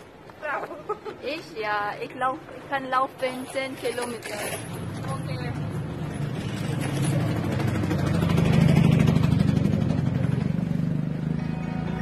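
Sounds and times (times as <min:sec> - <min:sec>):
vehicle passing by: 0:04.6 - 0:12.0.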